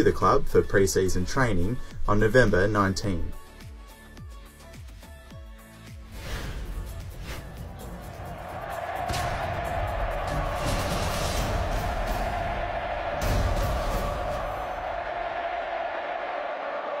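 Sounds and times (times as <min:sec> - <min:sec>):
heavy bass hits: 0:08.6 - 0:15.3.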